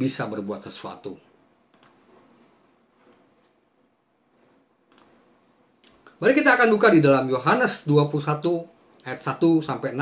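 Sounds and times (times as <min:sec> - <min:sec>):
sharp computer click: 0:01.7 - 0:02.0, 0:04.9 - 0:05.2.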